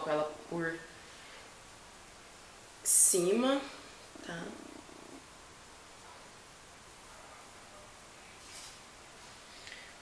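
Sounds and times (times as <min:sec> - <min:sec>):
woman saying a word: 0:02.9 - 0:05.2.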